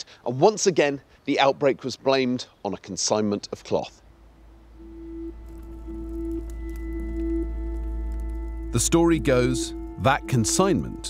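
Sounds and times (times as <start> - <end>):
deep rumble: 4.3 - 11.0
sustained drone music: 4.5 - 11.0.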